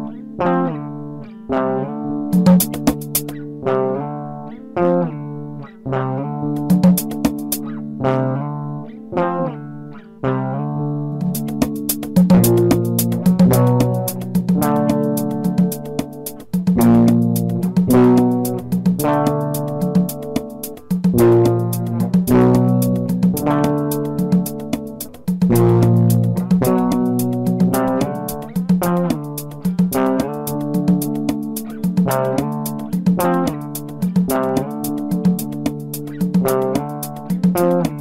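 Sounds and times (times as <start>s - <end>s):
guitar picking a melody: 0.0s - 38.0s
light ticking beat: 2.3s - 3.4s, 6.5s - 7.8s, 11.2s - 38.0s.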